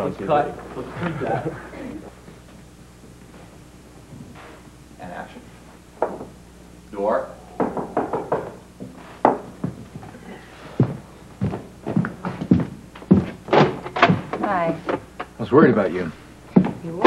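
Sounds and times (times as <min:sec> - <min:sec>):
footsteps: 0:01.9 - 0:04.8, 0:07.5 - 0:15.1, 0:16.5 - 0:17.0
knocking on wooden door: 0:06.0 - 0:06.4, 0:07.5 - 0:09.8.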